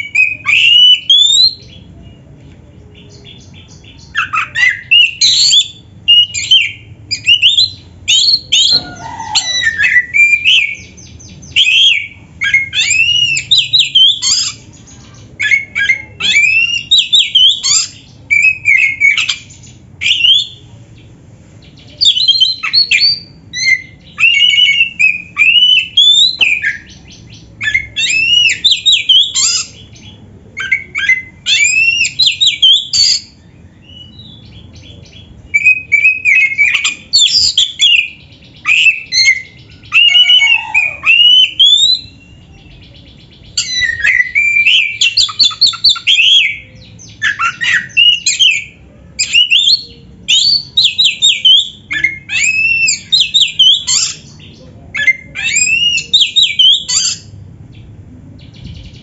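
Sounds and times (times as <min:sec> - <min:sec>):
magpie-robin singing: 0:00.0 - 0:59.0.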